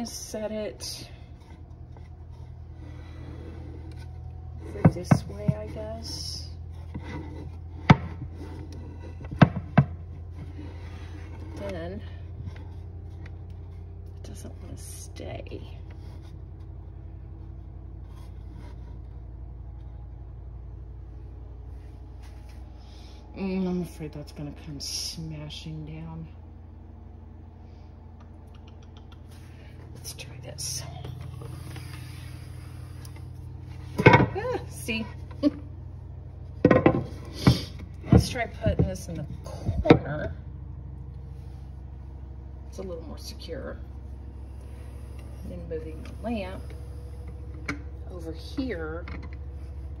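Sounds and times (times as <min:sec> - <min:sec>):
low background hum: 0:00.0 - 0:50.0
wood rubbing on surface: 0:01.3 - 0:11.7.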